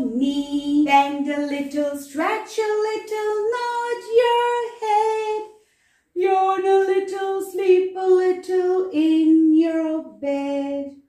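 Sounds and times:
woman singing unaccompanied: 0.0s - 5.5s, 6.2s - 11.0s.

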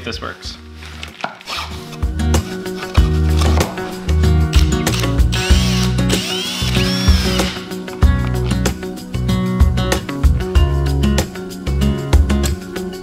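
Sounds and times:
background music: 0.0s - 13.0s
cordless drill whining: 1.5s - 3.6s, 4.5s - 7.7s
drill clicking: 4.5s - 7.7s.

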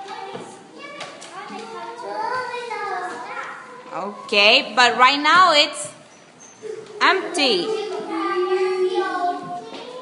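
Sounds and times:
children murmuring: 0.0s - 4.3s, 6.0s - 10.0s.

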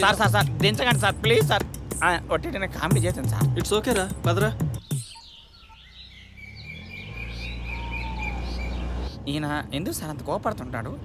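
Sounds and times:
birds chirping: 0.0s - 11.0s
vehicle engine rumble: 0.0s - 11.0s.

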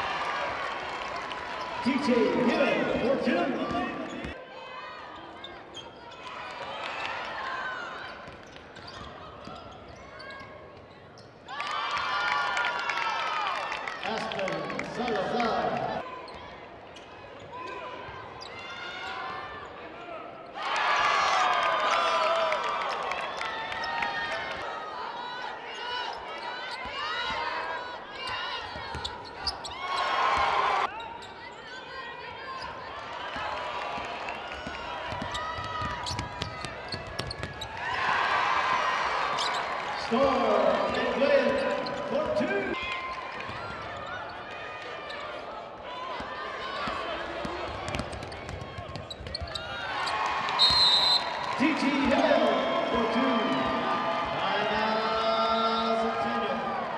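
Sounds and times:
crowd cheering: 0.0s - 5.2s, 11.5s - 16.1s, 20.5s - 31.0s, 31.9s - 56.9s
basketball bouncing on court: 33.4s - 37.8s, 46.2s - 49.7s.

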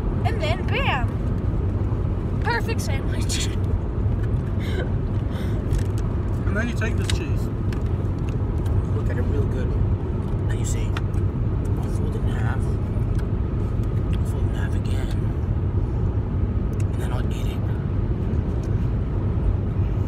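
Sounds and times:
car cabin rumble: 0.0s - 20.0s.

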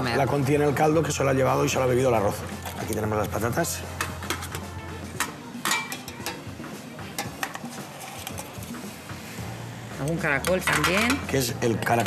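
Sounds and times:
metal utensils clinking on metal: 2.6s - 6.5s, 7.1s - 8.7s, 10.0s - 12.0s.

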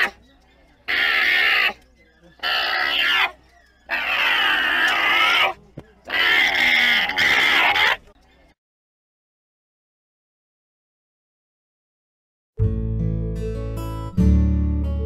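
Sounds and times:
alpaca giving high strained calls: 0.0s - 8.1s.

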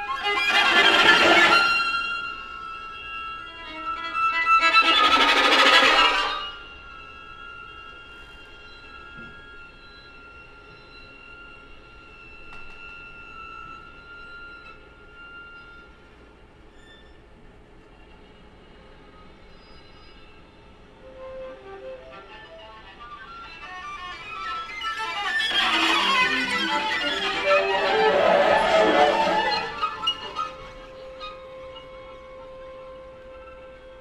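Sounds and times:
string quartet playing: 0.0s - 2.3s, 3.7s - 6.6s, 21.0s - 34.0s.

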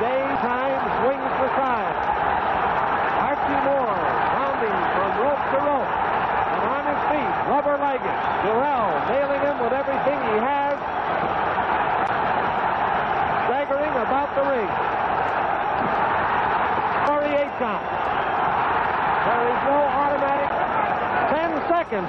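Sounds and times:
arena crowd roaring: 0.0s - 22.0s.

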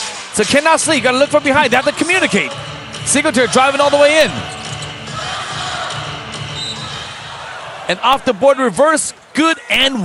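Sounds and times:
ball and players on court: 0.8s - 8.3s
crowd murmur: 0.9s - 8.4s.

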